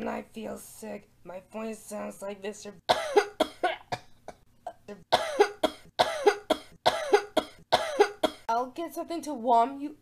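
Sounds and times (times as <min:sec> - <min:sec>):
person coughing: 0:02.9 - 0:08.5.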